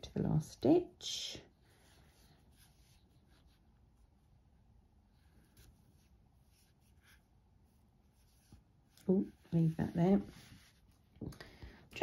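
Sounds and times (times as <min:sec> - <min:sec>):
crochet hook and yarn rustling: 0:01.7 - 0:11.3.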